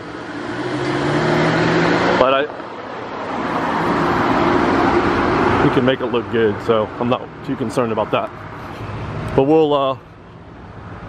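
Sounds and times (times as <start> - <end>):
car approaching: 0.0 - 11.0.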